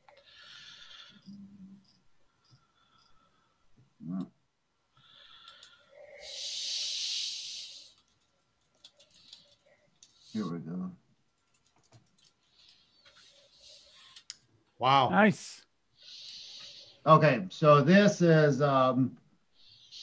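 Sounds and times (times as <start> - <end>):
breathy hissing noise: 0.1 - 3.8, 5.0 - 8.2, 12.4 - 14.2, 15.2 - 18.3, 19.5 - 20.0
faint clicks: 5.2 - 5.9, 7.9 - 10.4, 11.3 - 14.5.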